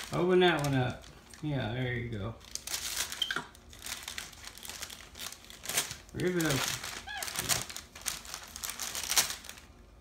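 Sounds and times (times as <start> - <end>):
gift-wrap paper crinkling: 0.0 - 10.0.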